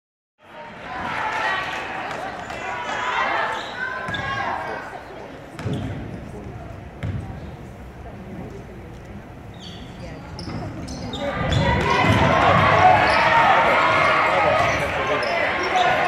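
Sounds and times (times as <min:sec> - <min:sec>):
crowd voices in a gymnasium: 0:00.4 - 0:16.0.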